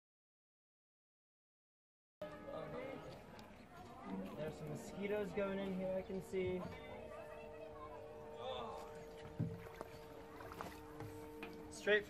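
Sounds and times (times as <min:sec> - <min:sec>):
water sloshing and splashing: 0:06.2 - 0:11.8.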